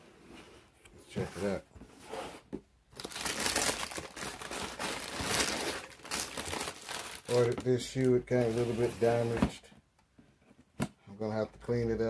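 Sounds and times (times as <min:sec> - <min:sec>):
wrapping crinkling and rustling: 0:02.9 - 0:09.4.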